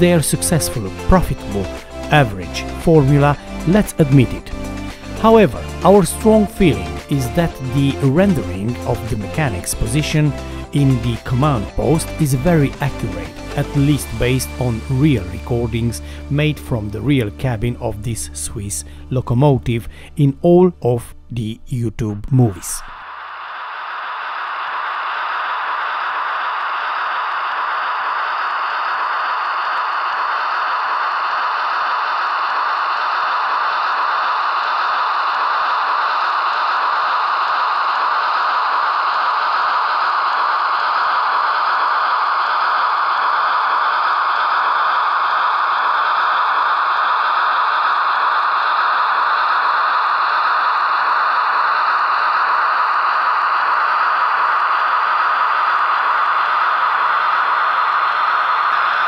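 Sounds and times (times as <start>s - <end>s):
loud rushing hiss: 22.8s - 59.0s.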